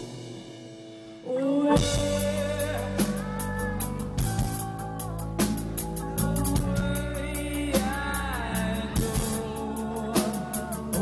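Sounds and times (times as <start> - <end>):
drum kit and cymbals: 0.0 - 11.0
guitar and bass chords: 0.0 - 11.0
person singing long note: 1.2 - 5.5.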